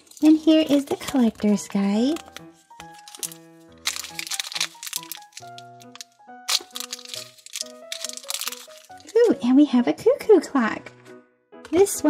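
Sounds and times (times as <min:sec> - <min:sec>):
plastic wrapper crinkling: 0:00.0 - 0:09.4
background music of held notes: 0:00.1 - 0:12.0.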